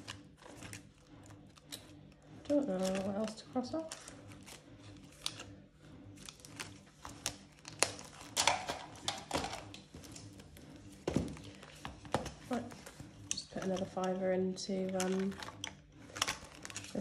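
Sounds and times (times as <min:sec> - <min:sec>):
plastic sleeves rustling: 0:00.0 - 0:17.0.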